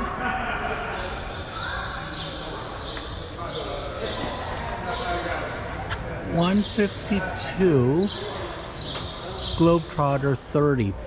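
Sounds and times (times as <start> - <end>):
people talking in large hall: 0.0 - 11.0.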